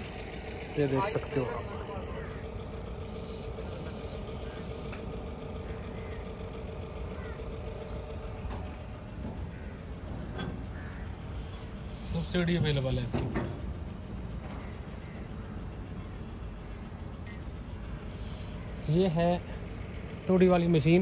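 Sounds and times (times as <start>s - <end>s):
steady background rumble: 0.0s - 21.0s.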